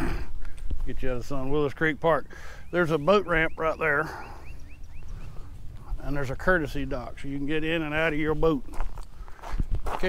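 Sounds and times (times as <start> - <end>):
bird chirping: 1.1 - 8.4.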